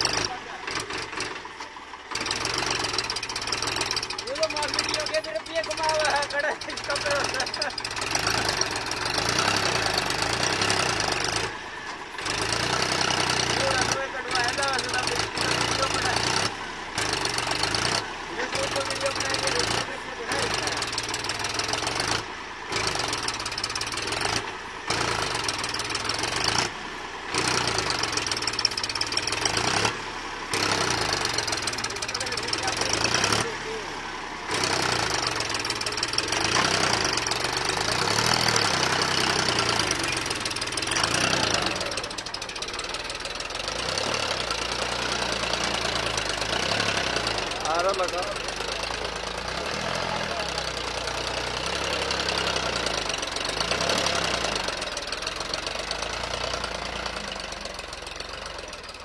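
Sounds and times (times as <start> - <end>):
tractor diesel engine labouring: 0.0 - 59.0.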